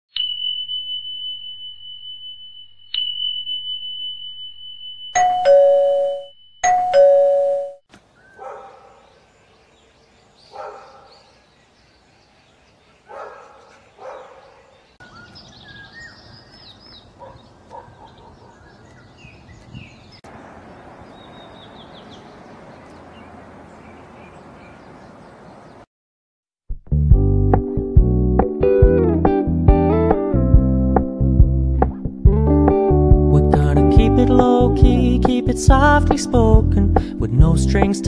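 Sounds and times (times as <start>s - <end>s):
high chime ringing: 0.2s - 7.7s
ding-dong chime: 0.2s - 7.8s
birds chirping: 7.9s - 25.9s
distant dog barking: 8.2s - 9.8s, 10.4s - 11.4s, 12.9s - 14.9s, 17.1s - 19.0s.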